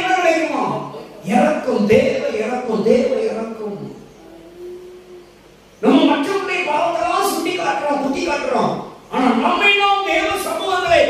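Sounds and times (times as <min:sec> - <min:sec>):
man speaking into a microphone: 0:00.0 - 0:04.2, 0:05.8 - 0:11.0
faint drawn-out tone: 0:04.1 - 0:05.9.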